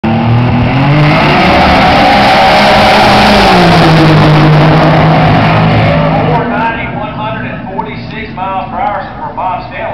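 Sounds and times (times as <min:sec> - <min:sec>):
car engine at full throttle: 0:00.0 - 0:09.9.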